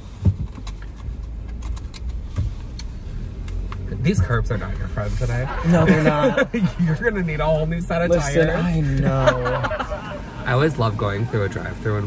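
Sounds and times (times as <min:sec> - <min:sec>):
car cabin rumble: 0:00.0 - 0:12.0.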